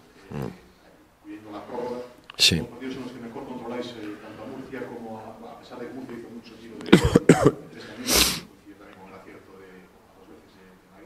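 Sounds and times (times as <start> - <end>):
man coughing: 6.9 - 8.4.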